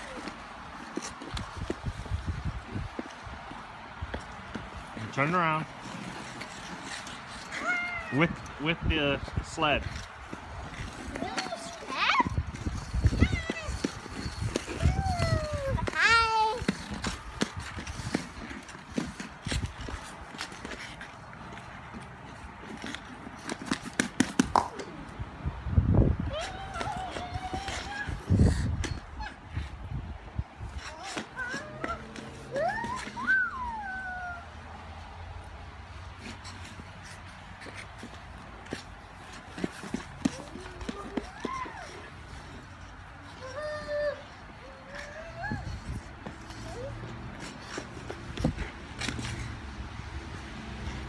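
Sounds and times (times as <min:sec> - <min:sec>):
young children calling and squealing: 0:06.0 - 0:08.6, 0:10.7 - 0:17.2, 0:26.1 - 0:29.8, 0:30.7 - 0:34.7, 0:39.8 - 0:48.2.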